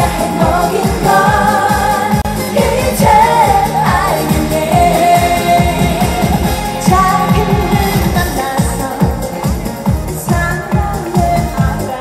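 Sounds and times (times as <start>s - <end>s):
backing track with dance beat: 0.0s - 12.0s
woman singing into microphone: 0.0s - 12.0s.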